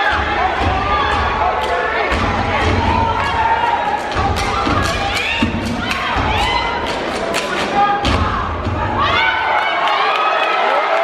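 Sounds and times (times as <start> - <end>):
audience cheering and shouting: 0.0 - 11.0
stomping and clapping in unison: 0.0 - 11.0.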